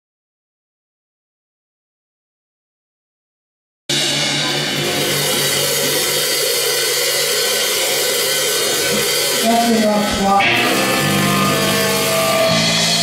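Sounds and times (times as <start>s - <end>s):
drum-kit cymbals: 3.9s - 13.0s
electric guitar chords: 3.9s - 13.0s.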